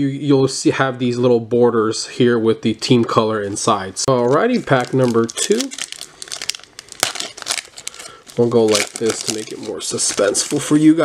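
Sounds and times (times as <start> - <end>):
card pack crinkling: 4.2 - 11.0.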